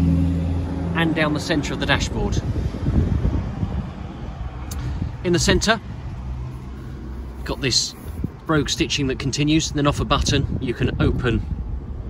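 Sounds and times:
wind rumbling on microphone: 0.4s - 12.0s.

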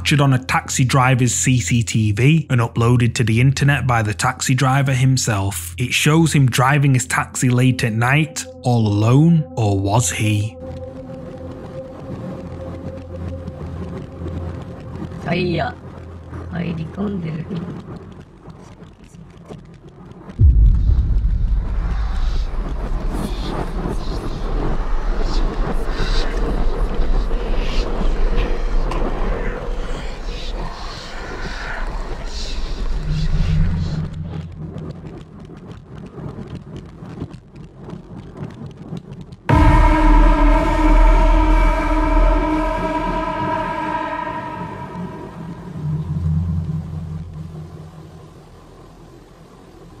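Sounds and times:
deep low rumble: 6.1s - 19.5s, 20.2s - 35.5s, 39.5s - 48.6s.

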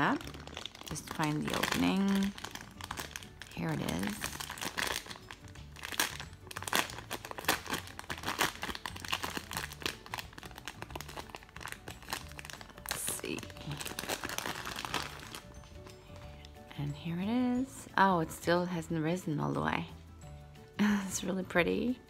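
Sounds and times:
plastic packaging crinkling: 0.0s - 16.5s.

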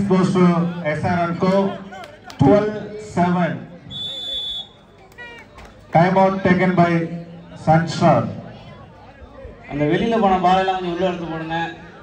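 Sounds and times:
referee's whistle blast: 3.9s - 4.8s.

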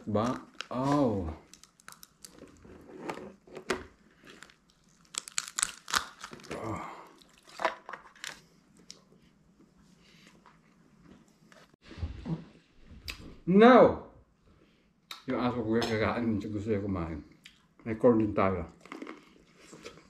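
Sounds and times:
lobster shell cracking: 1.4s - 2.6s, 4.4s - 6.6s.

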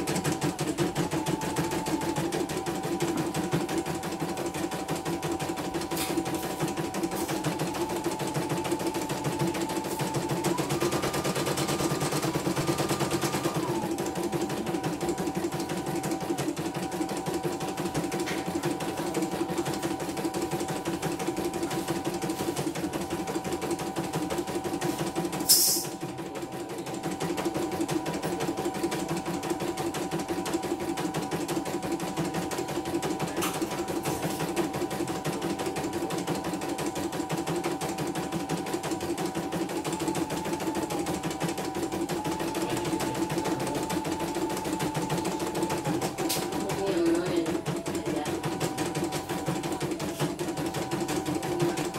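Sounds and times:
embroidery machine needle stitching: 0.0s - 51.9s.

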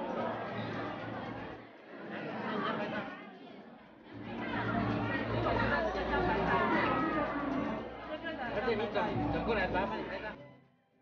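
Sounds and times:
people chattering: 0.0s - 10.5s.

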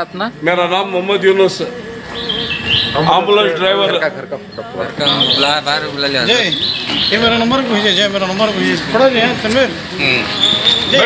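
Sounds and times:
small birds chirping: 2.0s - 3.4s, 4.4s - 8.2s
man talking: 2.9s - 10.3s.

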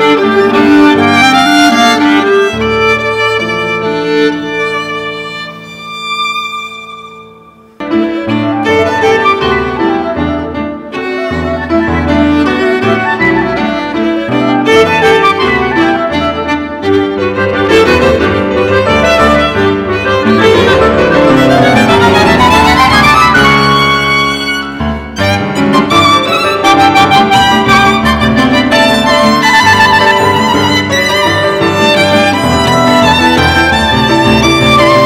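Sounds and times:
violin: 0.0s - 35.0s.

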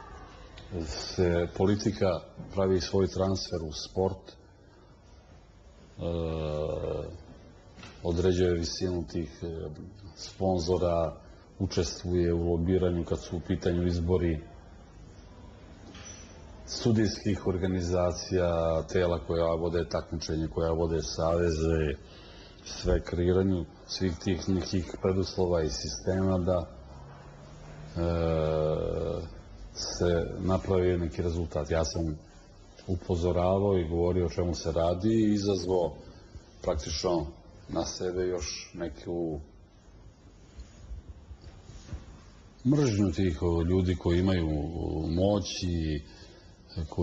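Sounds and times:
man speaking: 0.0s - 4.5s, 5.6s - 14.6s, 16.6s - 39.8s, 42.6s - 47.0s.

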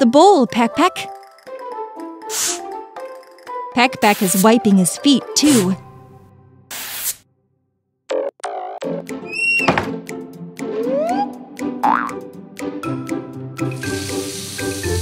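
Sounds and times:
children's cartoon music: 0.0s - 6.6s, 8.1s - 15.0s
springy boing effects: 11.8s - 12.2s
tap water running: 13.6s - 15.0s.

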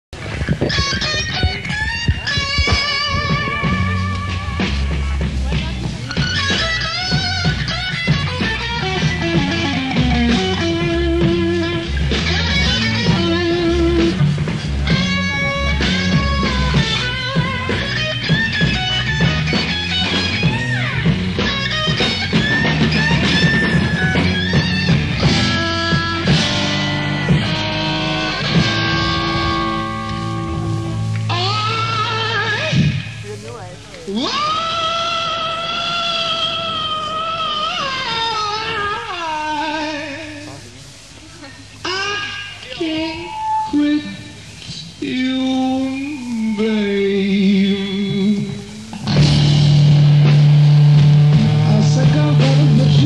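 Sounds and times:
bass guitar: 0.1s - 53.0s
blues band playing: 0.2s - 53.0s
electric guitar lead: 0.2s - 53.0s
drum hit: 49.0s - 52.7s.

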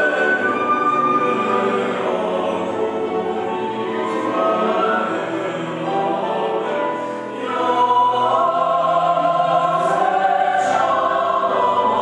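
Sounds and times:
cello: 0.0s - 12.0s
flute: 0.0s - 12.0s
mixed choir singing: 0.0s - 12.0s
piano: 0.0s - 12.0s.

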